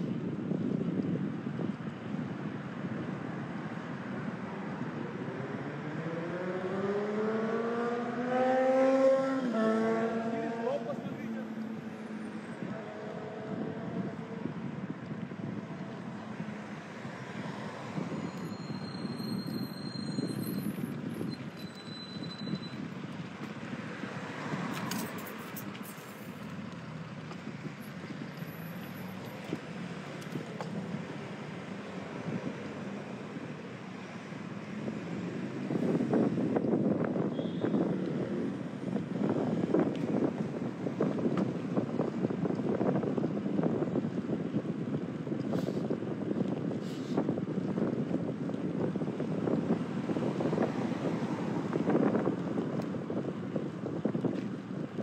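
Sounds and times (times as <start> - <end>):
street traffic: 0.0 - 55.0
wind rumbling on microphone: 0.0 - 55.0.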